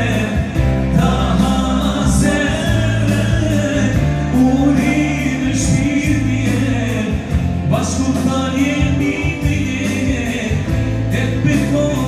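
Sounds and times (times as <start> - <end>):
long held bass notes: 0.0 - 12.0
person singing slow song: 0.0 - 12.0.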